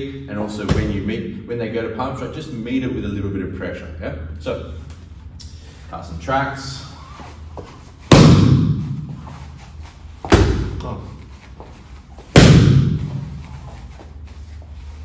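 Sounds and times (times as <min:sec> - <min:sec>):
palm strikes slapping focus mitt: 0:08.1 - 0:08.8, 0:12.4 - 0:13.2.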